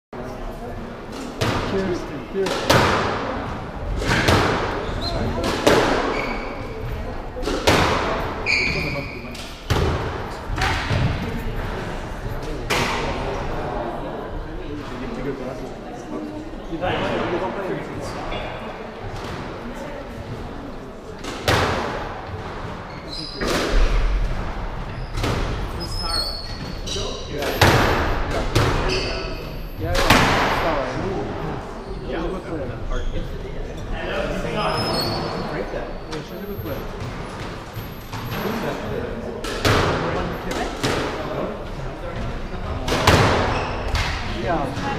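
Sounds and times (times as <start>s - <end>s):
ball hitting walls: 1.1s - 8.3s, 21.2s - 22.8s, 29.9s - 30.8s
racket striking squash ball: 2.4s - 11.4s, 21.2s - 25.8s, 27.4s - 29.0s, 29.9s - 30.8s, 39.4s - 41.2s, 42.7s - 44.8s
shoes squeaking on wooden floor: 4.7s - 7.1s, 8.4s - 9.5s, 22.4s - 23.7s, 24.8s - 28.0s, 34.5s - 38.9s, 42.1s - 44.1s.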